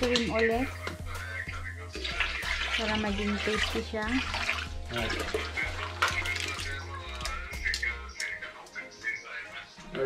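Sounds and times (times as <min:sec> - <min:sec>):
background music with bass beat: 0:00.0 - 0:10.0
milk pouring into metal pot: 0:01.9 - 0:07.7.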